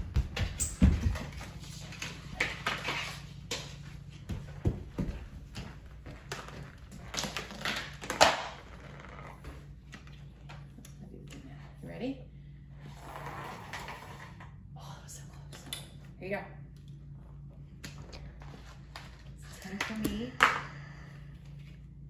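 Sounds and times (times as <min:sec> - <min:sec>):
footsteps: 0:00.0 - 0:07.2.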